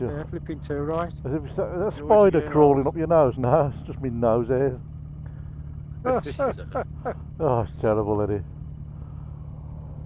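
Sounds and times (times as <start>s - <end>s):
motorcycle engine idling: 0.0s - 10.0s
man laughing: 1.2s - 2.8s, 6.1s - 7.3s.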